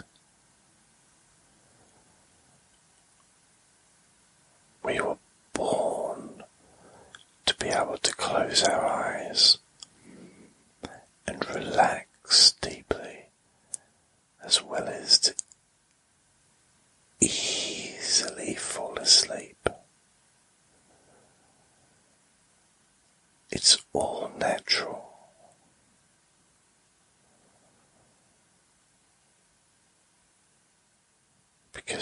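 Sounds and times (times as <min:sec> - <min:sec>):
person whispering: 0:04.8 - 0:06.5, 0:07.1 - 0:13.3, 0:14.4 - 0:15.4, 0:17.2 - 0:19.8, 0:23.5 - 0:25.6, 0:31.8 - 0:32.0.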